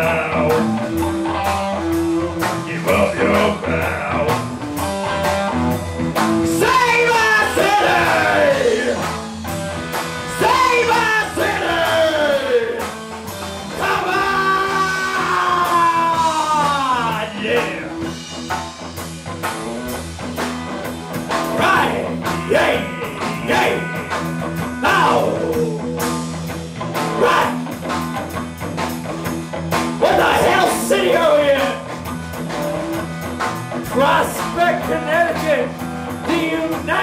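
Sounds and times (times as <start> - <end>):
person singing lead vocal: 0.0 - 1.4, 2.4 - 4.5, 6.4 - 9.2, 10.3 - 12.9, 13.7 - 18.2, 21.5 - 26.3, 27.1 - 27.7, 30.0 - 31.9, 33.8 - 37.0
bass guitar: 0.0 - 37.0
drums: 0.0 - 37.0
electric guitars: 0.0 - 37.0.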